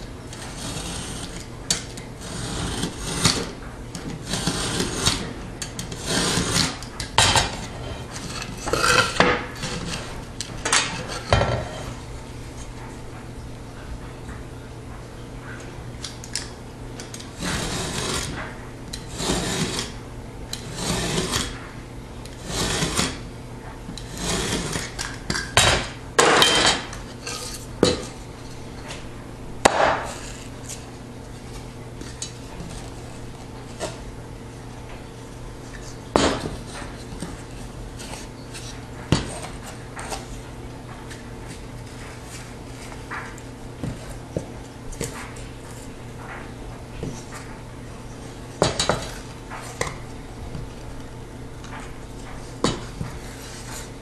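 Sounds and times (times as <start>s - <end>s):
steady low hum: 0.0s - 54.0s
utility knife scoring drywall: 0.3s - 3.6s, 4.2s - 10.1s, 17.2s - 20.0s, 20.6s - 21.6s, 22.4s - 23.2s, 24.0s - 25.1s.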